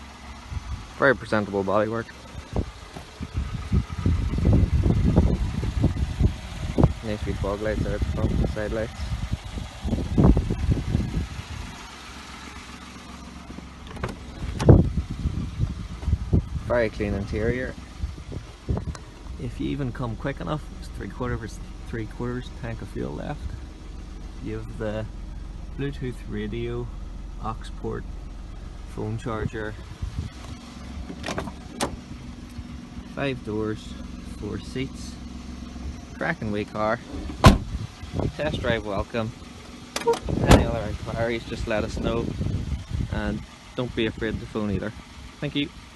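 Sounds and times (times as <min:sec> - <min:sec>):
microphone handling rumbles: 0:02.4 - 0:07.0, 0:07.9 - 0:11.6, 0:13.4 - 0:19.5, 0:28.5 - 0:32.8, 0:37.0 - 0:38.8, 0:40.2 - 0:43.4
car door thump: 0:13.5 - 0:14.8, 0:31.0 - 0:32.0, 0:37.1 - 0:37.8, 0:40.0 - 0:40.7.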